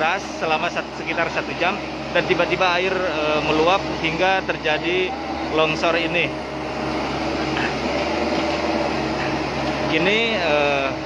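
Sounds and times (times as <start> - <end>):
excavator diesel engine running: 0.0 - 11.0.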